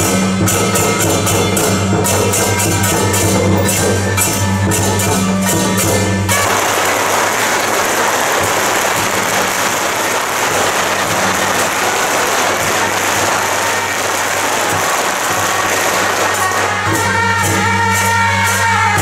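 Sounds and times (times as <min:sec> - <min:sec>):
music: 0:00.0 - 0:19.0
dense crackling noise: 0:06.3 - 0:16.8.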